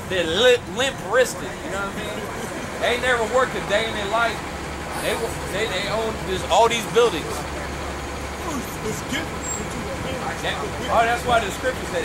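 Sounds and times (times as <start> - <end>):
bus diesel engine rumbling: 0.0 - 12.0
street chatter: 0.0 - 12.0.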